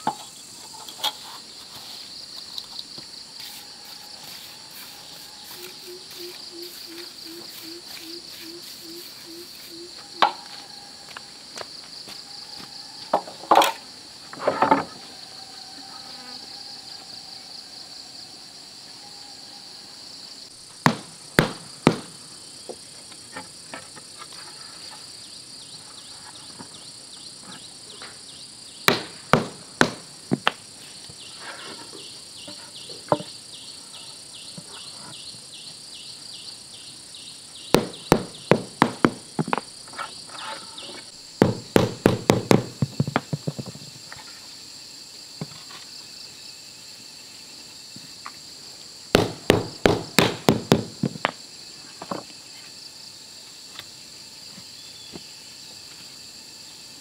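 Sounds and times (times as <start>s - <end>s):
high insect chorus: 0.0s - 57.0s
wooden boards clattering together: 14.4s - 14.9s
mallet knocking wooden boards: 37.8s - 39.6s, 41.4s - 43.5s, 49.2s - 51.2s.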